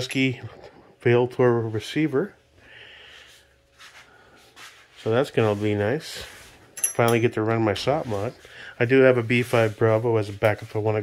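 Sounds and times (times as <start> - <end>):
soft rustles: 3.1 - 11.0.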